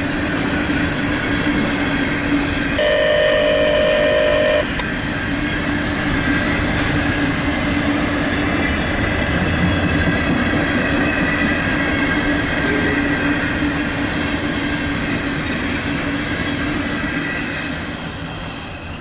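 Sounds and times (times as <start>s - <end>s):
train wheels rumbling on rails: 0.0s - 2.8s, 4.6s - 19.0s
wheels squealing: 10.6s - 15.2s.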